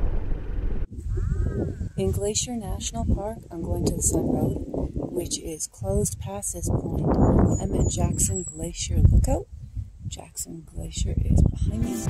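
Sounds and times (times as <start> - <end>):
wind rumbling on microphone: 0.0 - 11.9
woman vocal sound: 11.7 - 12.0.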